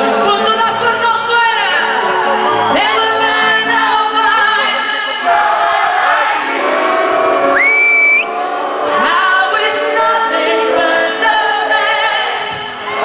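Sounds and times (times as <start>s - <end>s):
woman singing into microphone: 0.0s - 5.3s, 8.9s - 13.0s.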